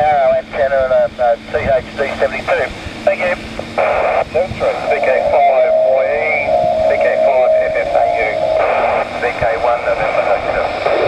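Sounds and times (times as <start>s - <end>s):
steady radio tone: 0.0s - 11.0s
tinny radio voices: 0.0s - 11.0s.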